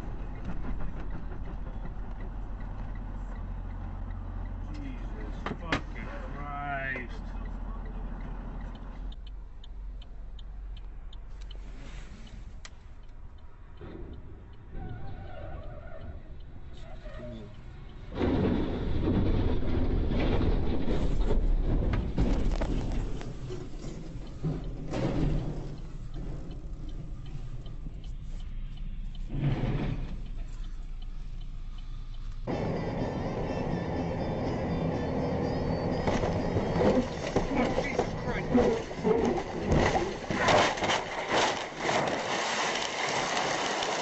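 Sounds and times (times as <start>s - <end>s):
road noise: 0.0s - 44.0s
truck engine rumble: 0.0s - 44.0s
light regular ticks: 6.9s - 13.9s, 22.3s - 32.5s.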